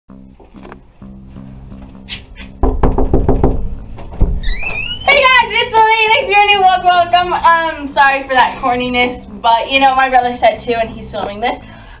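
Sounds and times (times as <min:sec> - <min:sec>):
knocking on a door: 0:02.6 - 0:04.8.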